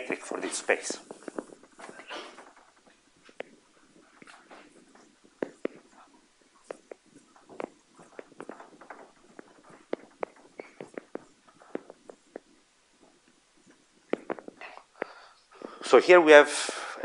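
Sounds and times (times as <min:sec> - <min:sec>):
chalk tapping on blackboard: 0:05.4 - 0:08.6.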